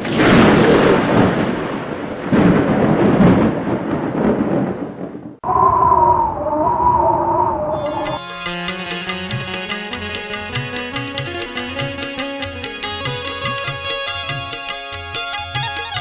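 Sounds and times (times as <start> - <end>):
thunder-like rumbling: 0.0 - 7.8
wavering pitched tone: 5.4 - 14.4.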